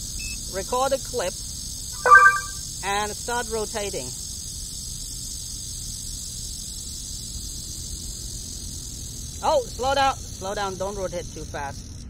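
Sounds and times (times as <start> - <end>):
high-pitched insect chorus: 3.5 - 12.0.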